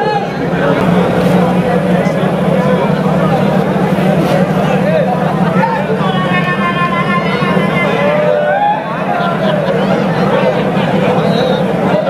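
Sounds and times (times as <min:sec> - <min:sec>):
steady low hum: 0:00.2 - 0:12.0
man singing over loudspeaker: 0:04.8 - 0:08.4.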